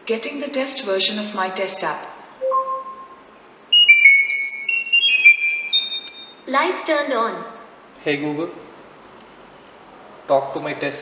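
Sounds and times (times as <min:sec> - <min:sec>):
high pure beeping tones: 0:02.4 - 0:06.4.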